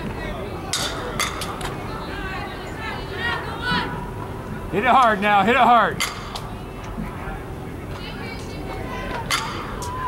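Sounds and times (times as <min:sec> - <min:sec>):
faint distant voices: 0:00.0 - 0:10.0
indoor hall hum: 0:00.0 - 0:10.0.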